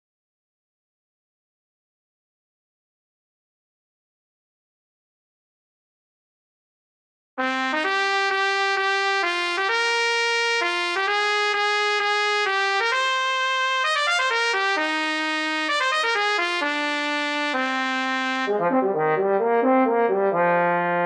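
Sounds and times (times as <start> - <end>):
synthesized trumpet melody: 7.4 - 21.0.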